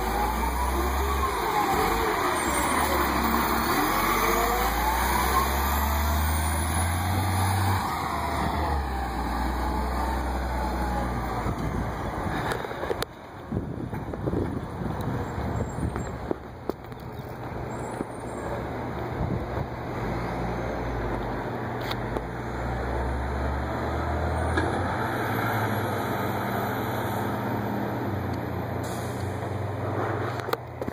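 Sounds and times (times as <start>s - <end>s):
bus engine driving away: 0.0s - 30.9s.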